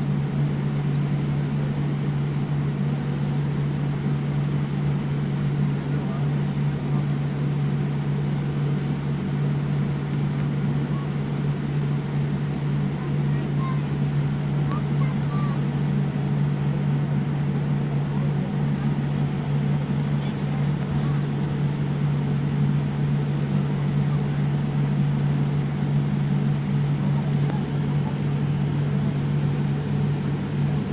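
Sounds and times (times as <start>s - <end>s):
airliner cabin hum: 0.0s - 30.9s.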